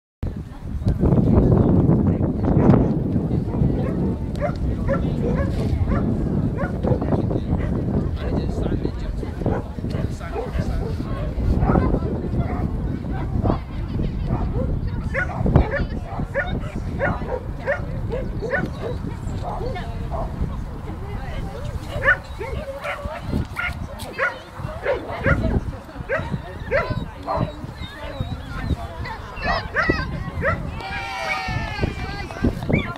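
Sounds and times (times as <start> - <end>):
dog barking: 3.8 - 7.0, 9.5 - 12.7, 14.3 - 20.3, 21.9 - 27.6, 29.4 - 30.6.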